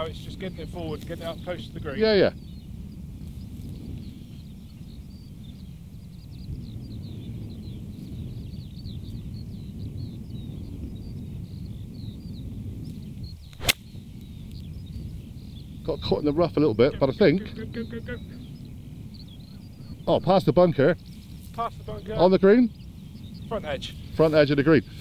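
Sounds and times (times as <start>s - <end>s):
wind rumble on microphone: 0.0s - 25.0s
golf club striking ball: 13.5s - 13.9s.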